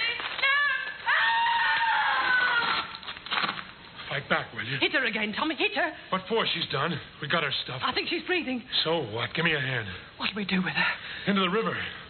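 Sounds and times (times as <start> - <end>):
woman screaming: 0.4 - 3.0.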